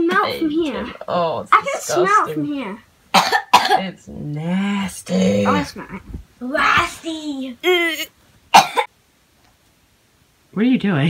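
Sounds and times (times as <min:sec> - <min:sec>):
loud cough: 0:03.2 - 0:03.8, 0:08.5 - 0:08.9.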